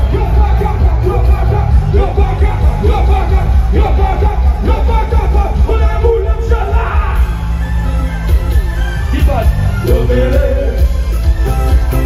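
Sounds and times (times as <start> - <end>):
loud music with heavy bass: 0.0 - 12.0.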